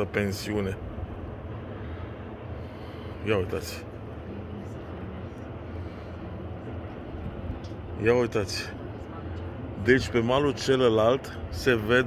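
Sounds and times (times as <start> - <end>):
low rumble with faint hiss: 0.0 - 12.0.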